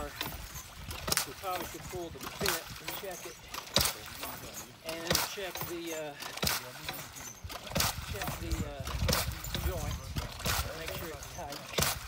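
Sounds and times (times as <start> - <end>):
people talking: 1.2 - 11.8.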